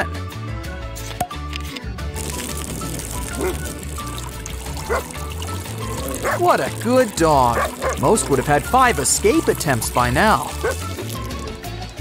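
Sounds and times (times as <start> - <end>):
background music with steady beat: 0.0 - 12.0
water spraying from hose: 2.2 - 12.0.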